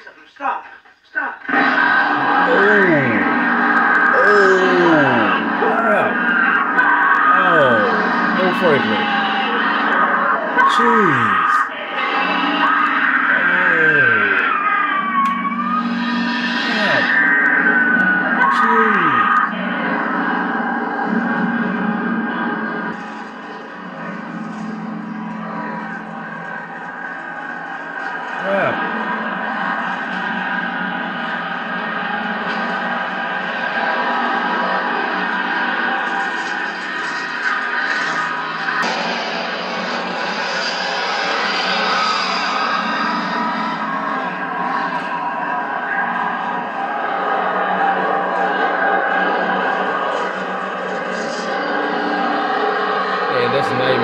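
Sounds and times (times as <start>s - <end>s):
droning horror score: 1.4s - 54.0s
high gliding cries: 2.2s - 9.6s.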